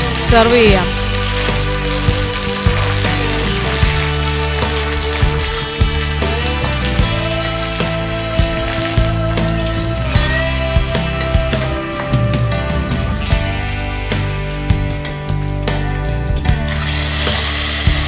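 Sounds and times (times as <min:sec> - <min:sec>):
background music: 0:00.0 - 0:18.0
oil sizzling in a wok: 0:00.0 - 0:18.0.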